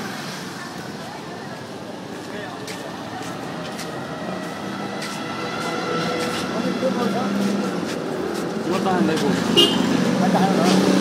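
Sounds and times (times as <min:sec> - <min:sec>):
traffic hum: 0:00.0 - 0:11.0.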